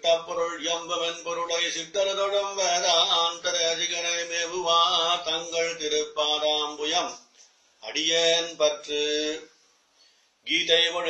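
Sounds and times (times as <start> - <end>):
man chanting melodically: 0.0 - 9.5, 10.5 - 11.0.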